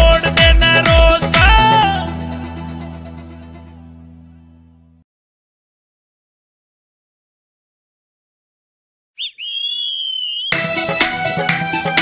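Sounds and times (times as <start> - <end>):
high whistle-like note: 9.2 - 10.7.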